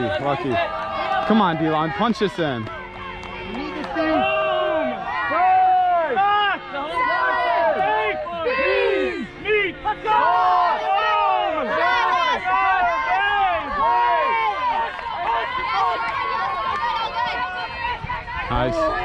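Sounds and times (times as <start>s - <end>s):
many people shouting: 0.0s - 19.0s.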